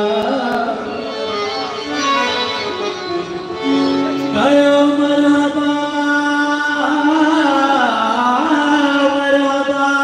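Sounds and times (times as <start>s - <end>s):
man singing long note: 3.2s - 10.0s.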